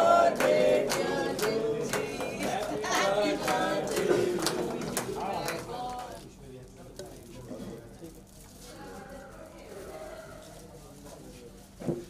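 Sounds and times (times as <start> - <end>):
murmur of voices: 0.0 - 11.8.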